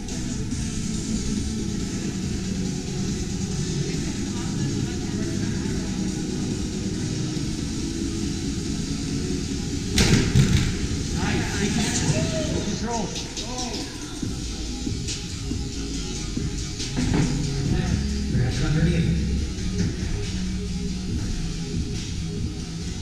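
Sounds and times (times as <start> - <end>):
background music: 0.0 - 23.0
voices in a hall: 0.7 - 9.8, 11.0 - 21.8
loud thump: 10.0 - 10.9.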